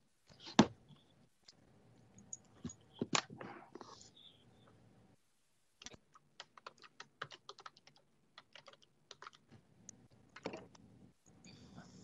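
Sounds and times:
typing on computer keyboard: 5.9 - 9.5.

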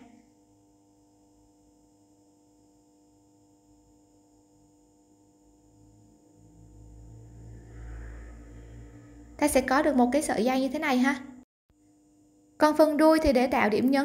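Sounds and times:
low rumble: 6.4 - 10.2.

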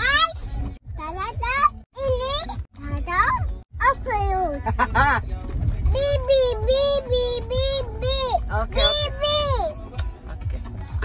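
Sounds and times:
toddler singing high syllables: 6.0 - 9.7.

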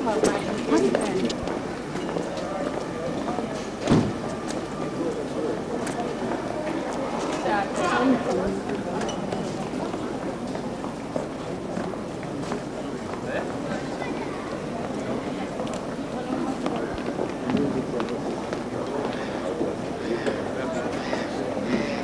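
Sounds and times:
indistinct chatter: 0.0 - 22.0.

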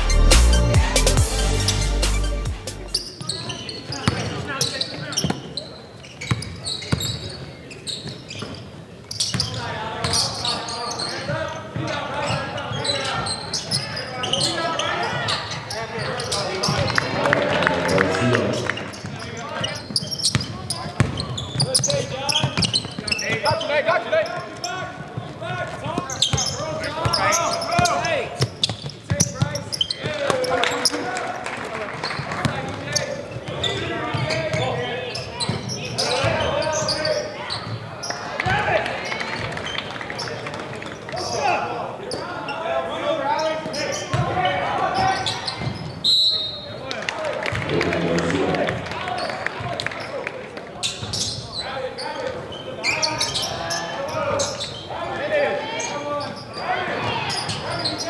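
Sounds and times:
voices calling and shouting: 9.4 - 25.0, 47.4 - 49.4.

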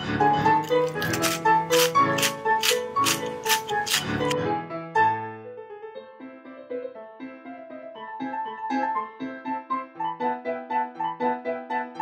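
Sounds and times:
light keyboard music: 0.0 - 12.0
pepper mill grinding: 0.4 - 4.4.

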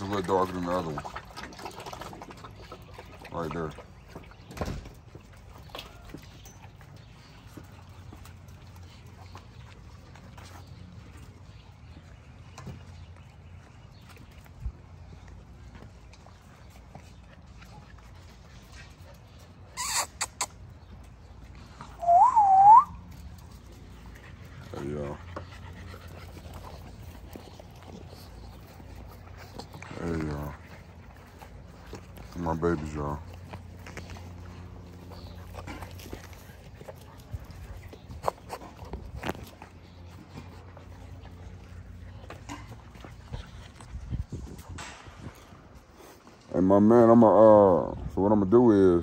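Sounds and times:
person whistling: 22.0 - 23.0.

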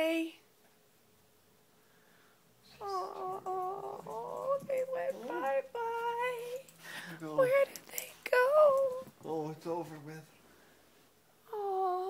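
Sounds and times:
small dog howling: 2.8 - 6.2.

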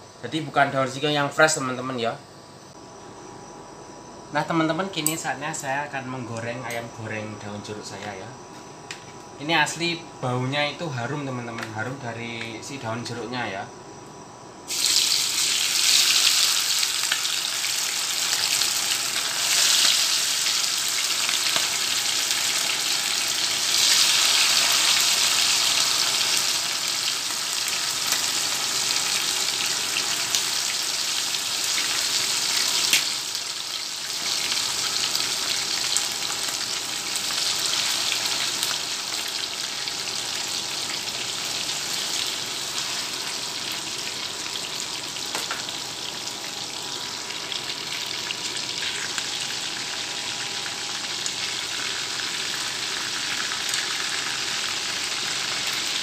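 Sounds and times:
chicken deep-frying in oil: 14.7 - 56.0.

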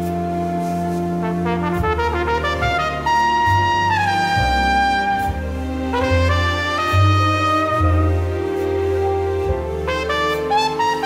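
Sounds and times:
steady low bass: 0.0 - 11.0
trumpet melody: 0.0 - 11.0.

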